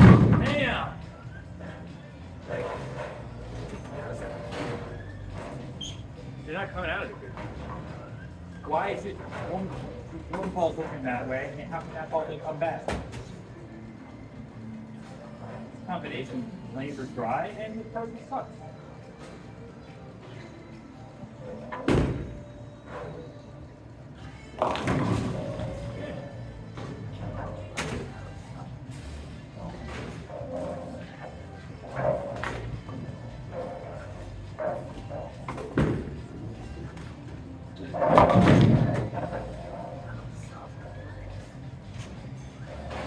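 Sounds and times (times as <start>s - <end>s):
bowling balls thudding: 0.0s - 0.6s, 21.6s - 23.1s, 24.5s - 26.0s, 31.8s - 40.2s
background music: 0.0s - 43.0s.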